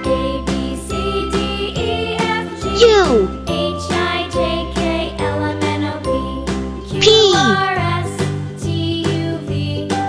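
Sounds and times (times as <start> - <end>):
children's music with steady beat: 0.1 - 10.0.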